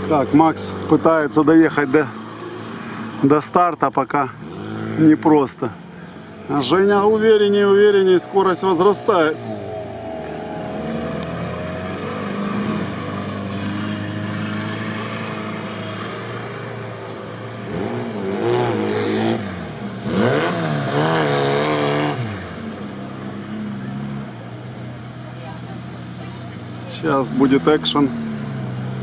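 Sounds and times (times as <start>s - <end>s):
suv engine revving: 0.0s - 29.0s.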